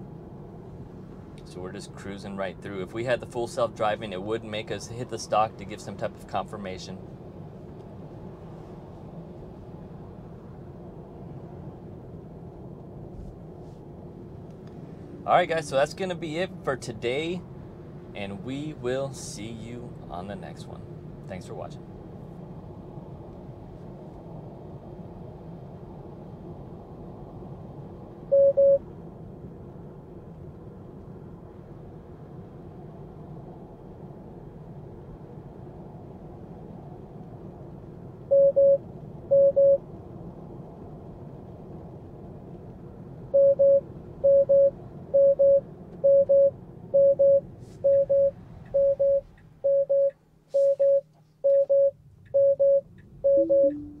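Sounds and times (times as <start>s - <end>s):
road and tyre noise: 0.0s - 54.0s
car warning chime beeping: 28.3s - 28.8s, 38.3s - 39.8s, 43.4s - 54.0s
falling two-note chime: 53.4s - 54.0s.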